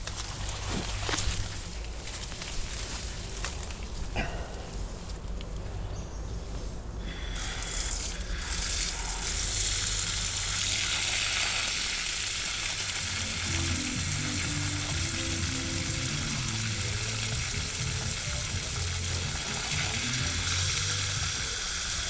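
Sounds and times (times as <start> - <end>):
hose nozzle spraying water: 7.0 - 22.0.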